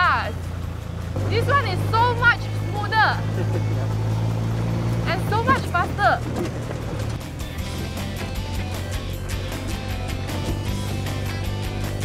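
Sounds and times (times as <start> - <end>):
dune buggy engine droning: 0.0 - 12.0.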